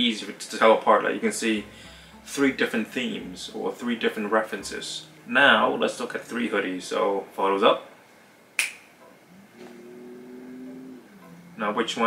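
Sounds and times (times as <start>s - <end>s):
finger snap: 8.6s - 9.1s.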